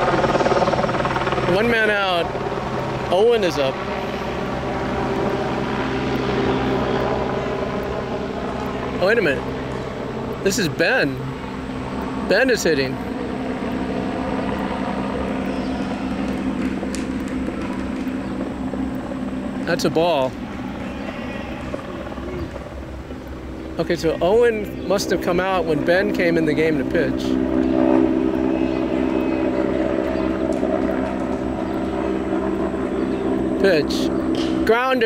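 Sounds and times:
motor humming: 0.0 - 34.8
engine drone: 0.0 - 35.0.

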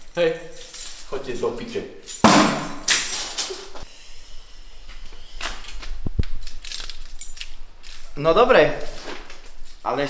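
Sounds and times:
keys jingling: 0.0 - 3.5, 6.3 - 10.0.

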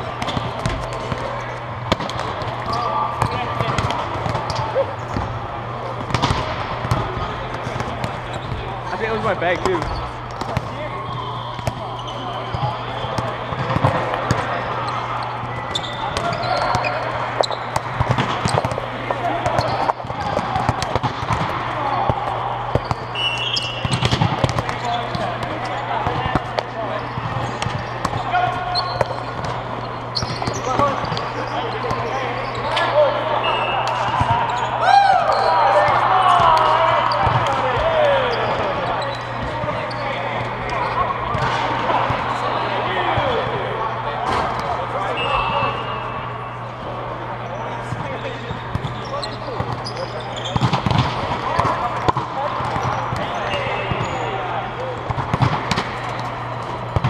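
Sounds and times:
volleyballs hit and bouncing: 0.0 - 46.0, 47.8 - 57.0
players talking and calling: 0.0 - 57.0.

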